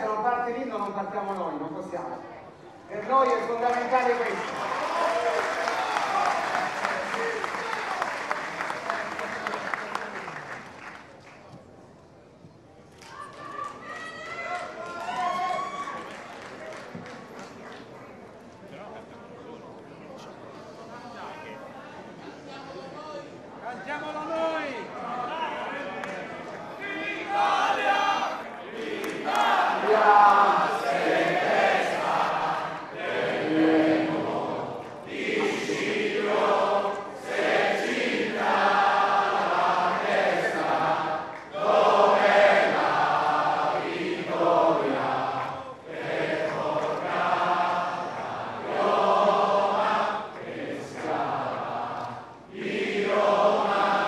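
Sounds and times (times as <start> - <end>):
audience singing unaccompanied: 27.2 - 54.0.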